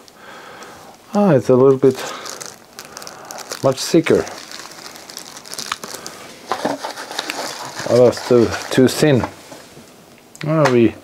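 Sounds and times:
plastic bag rustling and crinkling: 0:00.6 - 0:09.9.

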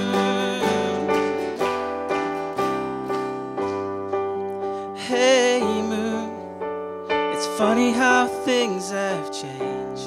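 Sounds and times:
person singing: 0:00.0 - 0:01.9, 0:04.4 - 0:10.0
piano-like keyboard chords: 0:00.0 - 0:10.0.

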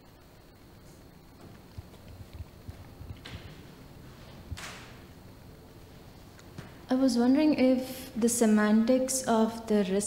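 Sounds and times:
footsteps soft thuds: 0:00.8 - 0:05.1, 0:05.9 - 0:06.9.

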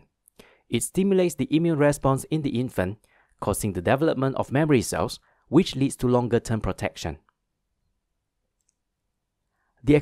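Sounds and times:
person narrating: 0:00.7 - 0:07.3, 0:09.8 - 0:10.0.

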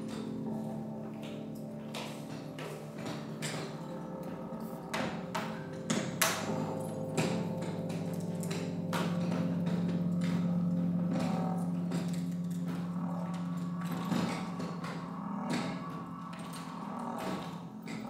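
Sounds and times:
low held tone: 0:00.0 - 0:18.0.

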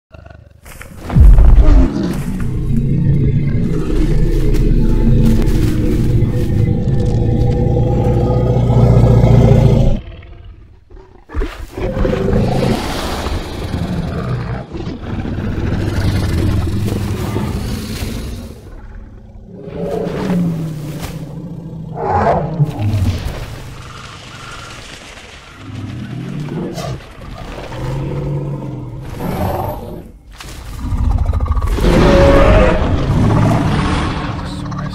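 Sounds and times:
dinosaur roar and growl: 0:00.1 - 0:34.9.

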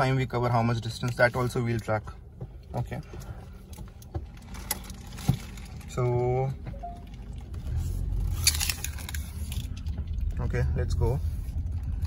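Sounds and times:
car engine idling: 0:00.2 - 0:12.0.

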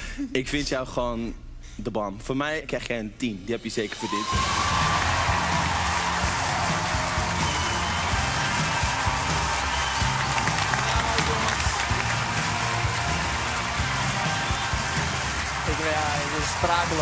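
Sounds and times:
loud show music: 0:04.1 - 0:17.0
studio audience applauding: 0:04.1 - 0:17.0.

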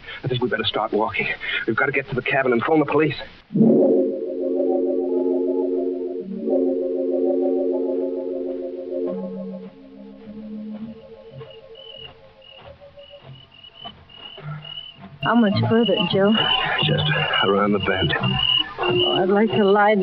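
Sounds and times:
organ chords with tremolo: 0:03.5 - 0:20.0
faint high cricket chirps: 0:10.2 - 0:20.0.

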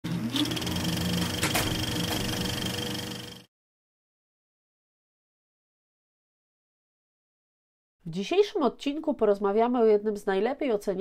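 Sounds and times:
fast mechanical clatter with whine: 0:00.2 - 0:03.5.

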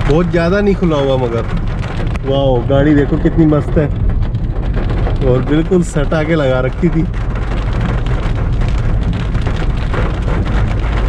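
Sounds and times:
car and tyres on wet road: 0:00.0 - 0:11.0
rain on a car: 0:00.0 - 0:11.0.

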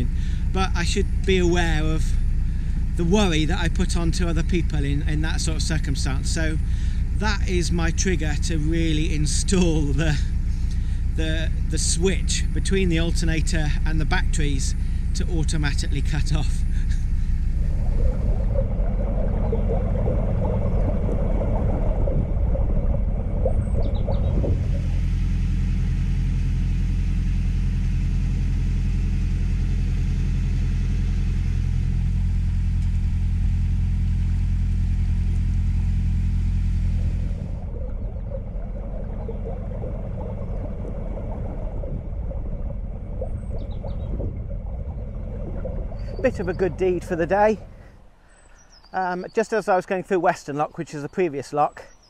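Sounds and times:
boat engine rumbling: 0:00.0 - 0:52.0.

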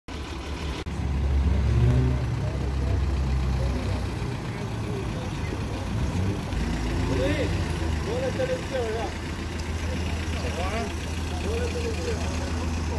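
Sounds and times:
road traffic: 0:00.1 - 0:12.9
vehicle engines idling: 0:00.1 - 0:12.9
people talking: 0:01.0 - 0:12.9.

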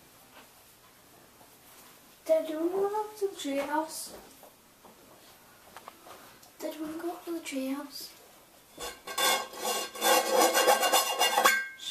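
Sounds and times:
rasping squeak of rubbing: 0:08.8 - 0:11.9.

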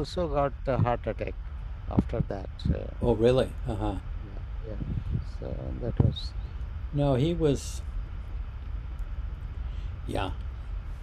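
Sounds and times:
faint hiss: 0:00.0 - 0:11.0
low background rumble: 0:00.0 - 0:11.0.

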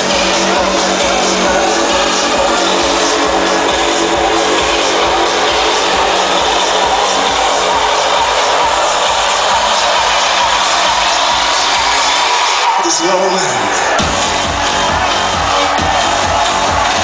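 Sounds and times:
loud trance music: 0:00.0 - 0:17.0.

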